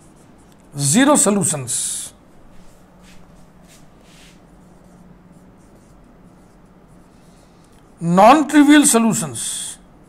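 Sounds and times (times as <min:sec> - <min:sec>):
marker scratching on whiteboard: 0:00.0 - 0:01.5, 0:02.5 - 0:08.0
steady low hum: 0:00.0 - 0:10.0.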